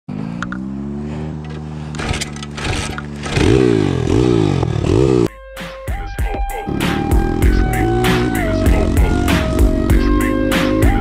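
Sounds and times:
single-cylinder engine running: 0.1 - 5.3.

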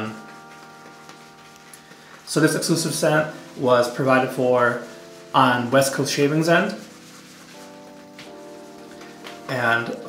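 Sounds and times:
soft background music chords: 0.0 - 10.0
shaving brush swirling on soap: 3.3 - 8.8.

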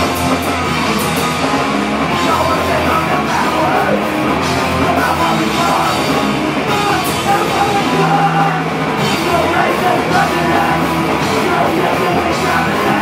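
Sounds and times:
bass guitar: 0.0 - 13.0
drum kit: 0.0 - 13.0
electric guitars: 0.0 - 13.0.

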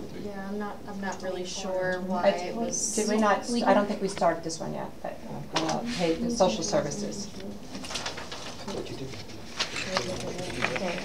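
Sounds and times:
murmured voices: 5.0 - 11.0.

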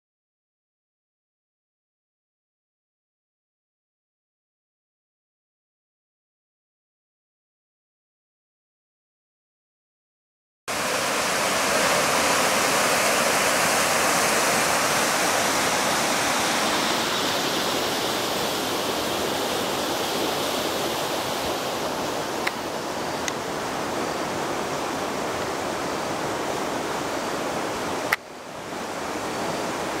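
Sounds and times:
flowing river water: 10.7 - 30.0.

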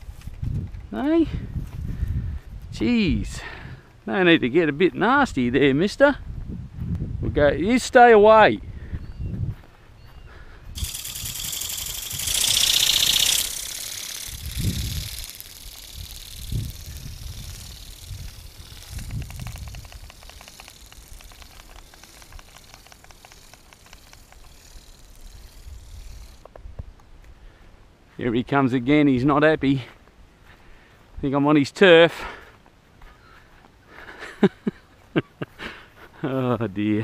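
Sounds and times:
wind rushing over microphone: 0.0 - 3.8, 5.2 - 9.7, 10.6 - 22.4
faint fast ticking: 10.8 - 26.5.

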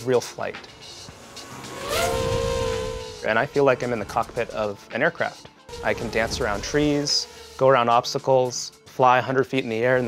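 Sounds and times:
low rushing rumble: 0.6 - 4.8
drone motors whining: 0.7 - 4.6.

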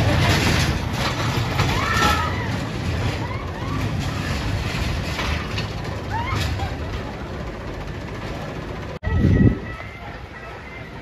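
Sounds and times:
coaster car clattering on track: 0.0 - 11.0.

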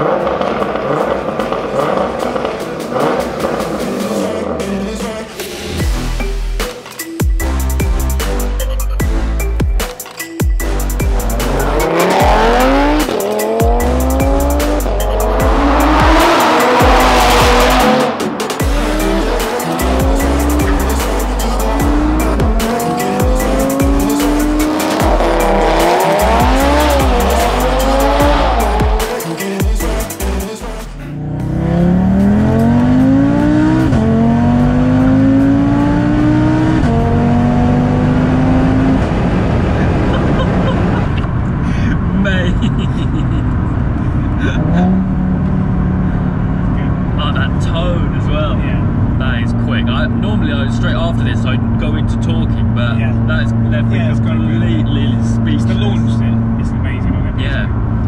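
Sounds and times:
car engine accelerating: 0.0 - 6.2, 10.6 - 58.0
electronic music with bass beat: 1.0 - 37.7.

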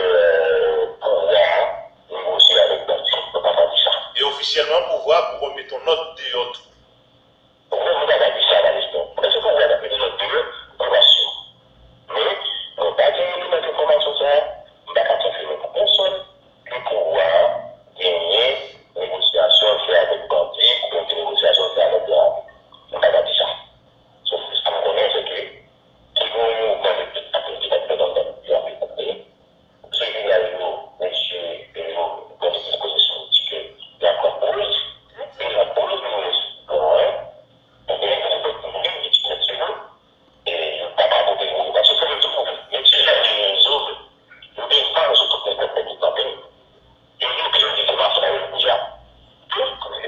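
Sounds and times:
man speaking muffled: 0.0 - 6.7, 7.7 - 11.5, 12.1 - 46.6, 47.2 - 50.0
faint high whine: 0.0 - 50.0.

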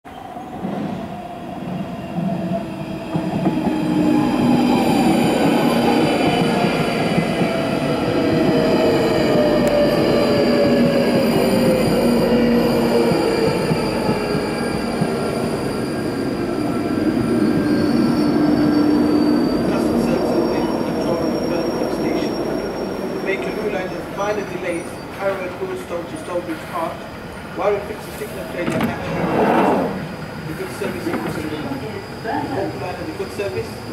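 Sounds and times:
electric train whine braking: 3.8 - 25.4
high-pitched wheel squeal: 9.7 - 25.4, 28.8 - 33.9.

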